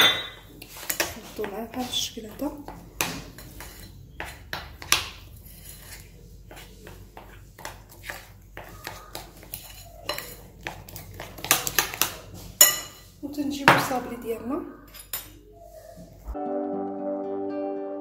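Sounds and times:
metal spoon stirring in glass bowl: 3.4s - 4.4s, 5.1s - 13.2s.

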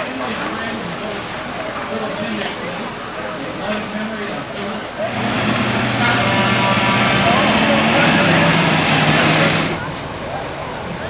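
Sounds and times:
people talking: 0.0s - 11.0s
motor engine running: 5.0s - 10.0s.

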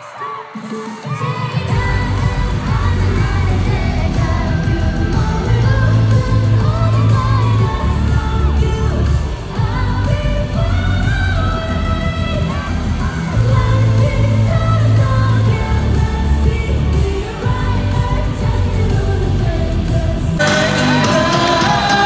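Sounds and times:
singing: 0.0s - 22.0s.

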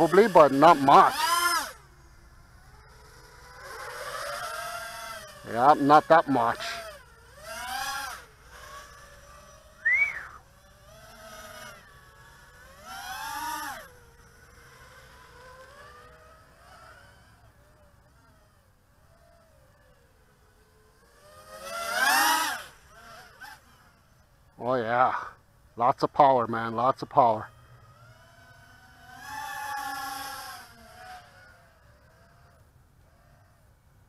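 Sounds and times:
quadcopter motors whining: 0.0s - 34.0s.

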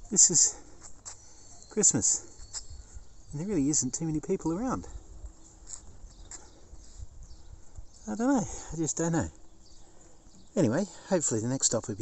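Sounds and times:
faint high chirps: 0.0s - 8.4s.

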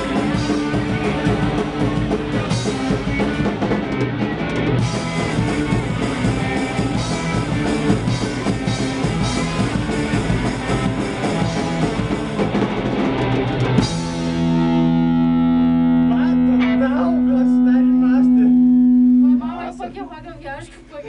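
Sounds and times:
punk band playing: 0.0s - 21.0s
distorted guitar chord ringing: 4.8s - 20.3s
people talking: 16.0s - 21.0s.

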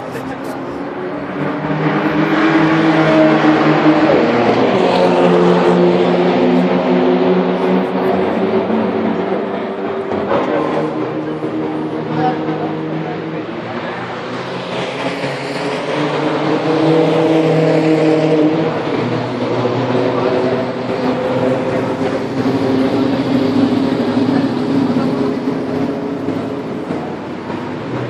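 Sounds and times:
cars revving past at speed: 0.0s - 28.0s.

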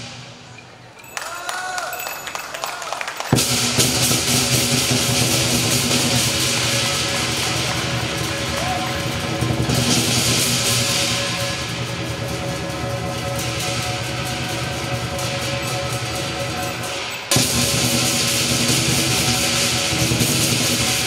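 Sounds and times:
cymbals clashing: 0.0s - 21.0s
drum and gong percussion: 0.0s - 21.0s.

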